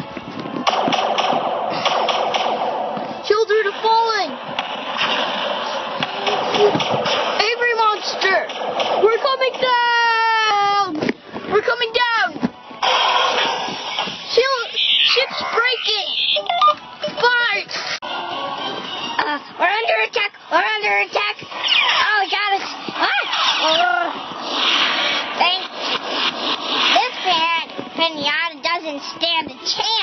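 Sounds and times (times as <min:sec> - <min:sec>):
stepped electronic beeps: 0:14.3 - 0:17.6
electronic chirps: 0:14.7 - 0:17.3
cartoon spaceship rushing noise: 0:23.0 - 0:27.1.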